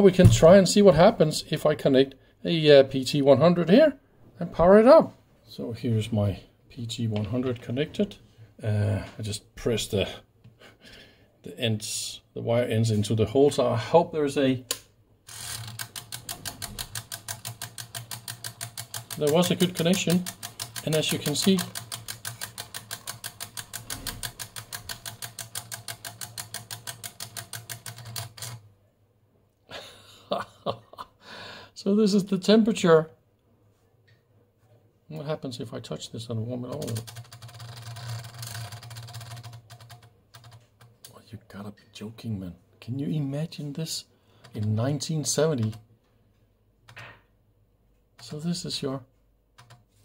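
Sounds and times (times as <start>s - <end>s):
mechanical counter ticking fast: 15.3s - 28.6s, 36.7s - 40.6s.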